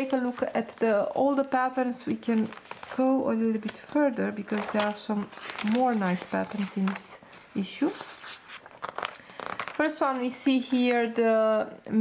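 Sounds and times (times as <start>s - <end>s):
magazine pages turning: 0.0s - 11.1s.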